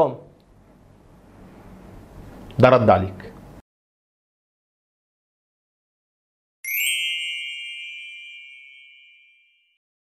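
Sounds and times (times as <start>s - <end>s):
bright bell ding: 6.6s - 9.8s.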